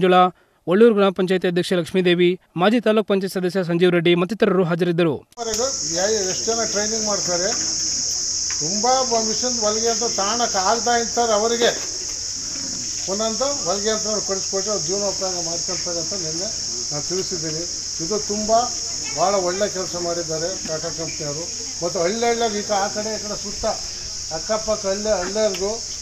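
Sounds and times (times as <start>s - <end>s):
man speaking: 0.0s - 8.0s, 8.6s - 11.9s, 12.7s - 25.9s
crickets chirring: 5.4s - 26.0s.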